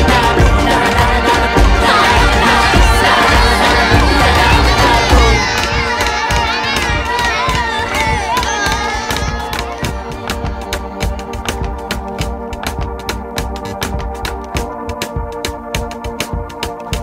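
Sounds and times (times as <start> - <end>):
background music with beat: 0.0 - 17.0
children shouting and cheering: 1.5 - 11.8.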